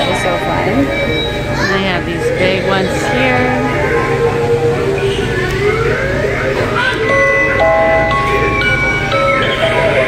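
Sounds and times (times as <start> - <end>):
held electronic notes: 0.0 - 10.0
store background hum: 0.0 - 10.0.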